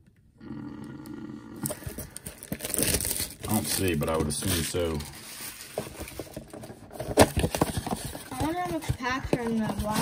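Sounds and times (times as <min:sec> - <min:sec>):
cardboard box handling noise: 0:01.8 - 0:10.0
soft rustling: 0:03.6 - 0:10.0.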